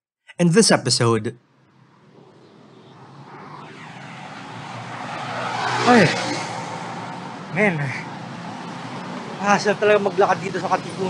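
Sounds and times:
street traffic: 0:01.4 - 0:11.0
car passing close by: 0:01.8 - 0:11.0.

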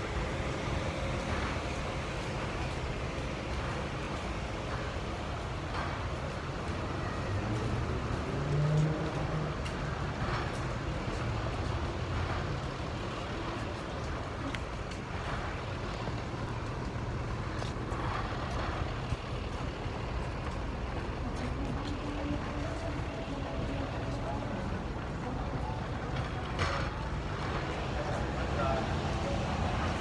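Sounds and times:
engine accelerating: 0:00.0 - 0:30.0
traffic rumble: 0:00.0 - 0:30.0.

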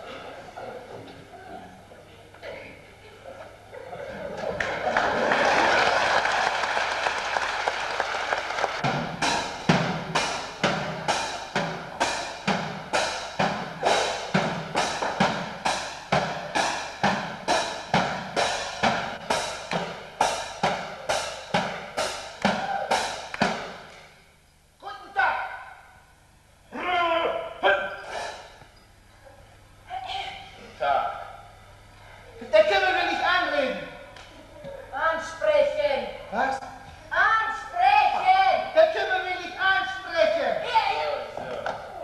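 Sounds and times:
applause: 0:04.5 - 0:08.9
rhythmic sharp strikes: 0:06.5 - 0:25.2.

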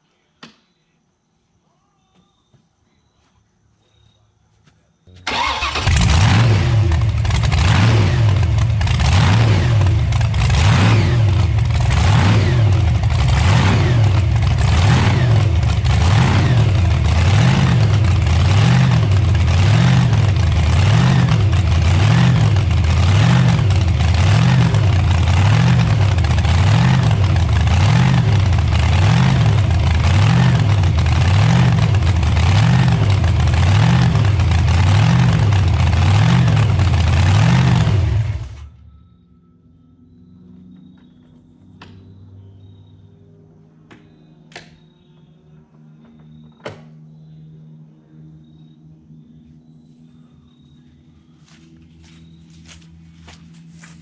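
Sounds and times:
car engine starting and idling loud: 0:05.2 - 0:38.9.

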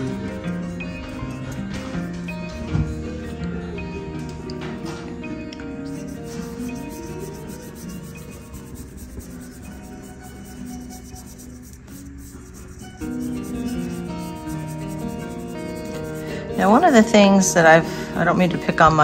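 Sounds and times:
paintbrush scrubbing paint: 0:00.0 - 0:03.4, 0:05.9 - 0:16.9
soft music of held notes: 0:00.0 - 0:19.0.

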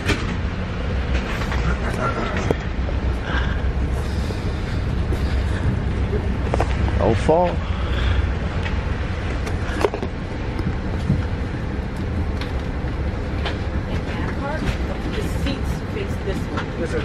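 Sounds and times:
low train rumble: 0:00.0 - 0:17.0.

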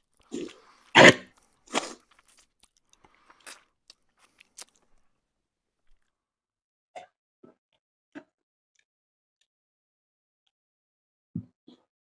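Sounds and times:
wet chewing sounds: 0:00.0 - 0:05.2
mouth smacks and clicks: 0:00.2 - 0:05.0.

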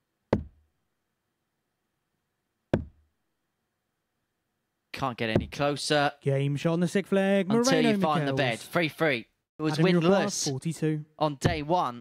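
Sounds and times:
darts striking dartboard: 0:02.8 - 0:03.0.

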